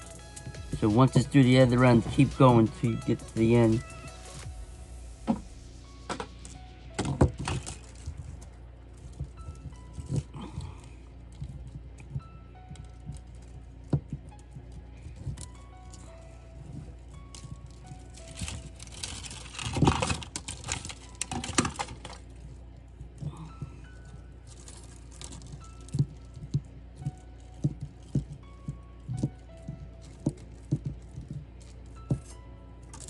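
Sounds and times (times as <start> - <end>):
wire and plastic tubing rattling: 0.0 - 4.5, 5.3 - 33.0
soft background music: 0.0 - 33.0.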